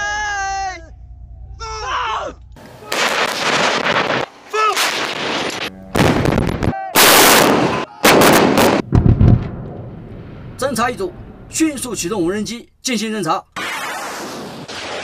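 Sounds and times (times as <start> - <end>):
howitzer gun blasts: 2.9 - 10.6, 13.6 - 15.0.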